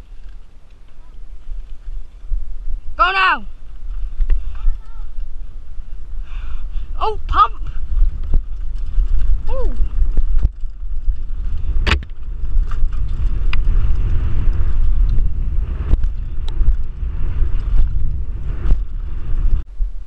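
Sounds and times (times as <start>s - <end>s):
tyres on dirt: 0.0s - 19.6s
wind on microphone: 0.0s - 20.0s
bike clacking and rattling over bumps: 3.6s - 19.7s.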